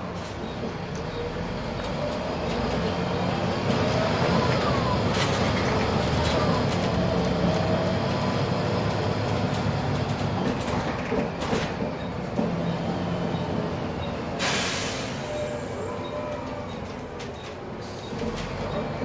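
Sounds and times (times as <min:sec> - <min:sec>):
bus diesel engine: 0:00.0 - 0:19.0
road noise: 0:00.0 - 0:19.0.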